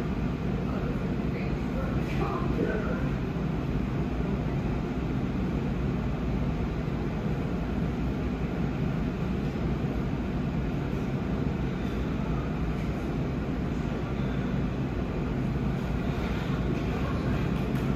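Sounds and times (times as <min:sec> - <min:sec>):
refrigeration unit humming: 0:00.0 - 0:17.9.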